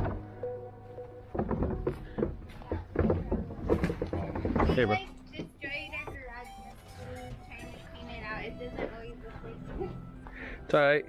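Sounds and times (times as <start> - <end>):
indistinct voices talking: 2.5 - 10.1.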